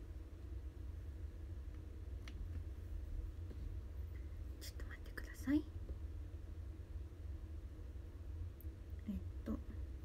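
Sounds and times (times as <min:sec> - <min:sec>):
steady low hum: 0:00.0 - 0:10.0
woman whispering: 0:04.6 - 0:05.8.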